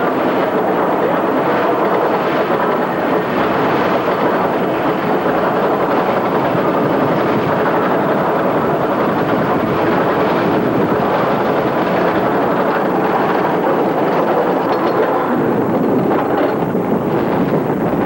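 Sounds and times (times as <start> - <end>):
roller coaster lift chain rattle: 0.2 - 18.0.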